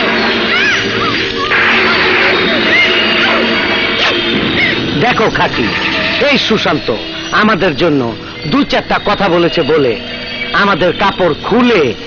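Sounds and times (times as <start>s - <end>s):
noisy crashing sound effect: 0.0s - 7.0s
sharp hit: 0.0s - 7.4s
background music: 0.0s - 12.0s.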